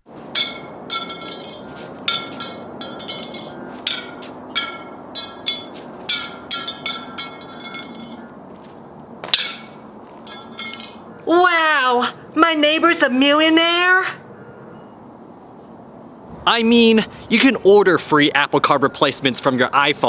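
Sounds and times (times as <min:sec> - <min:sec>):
metal card clinking on asphalt: 0:00.4 - 0:08.3, 0:09.2 - 0:11.0.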